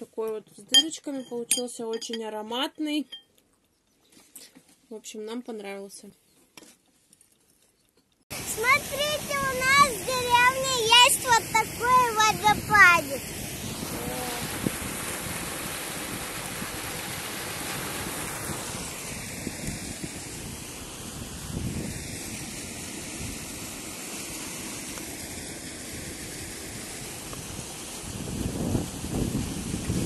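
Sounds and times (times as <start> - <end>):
water rushing over waterfall: 8.3 - 21.3
wind on microphone: 8.4 - 23.9, 25.8 - 30.0.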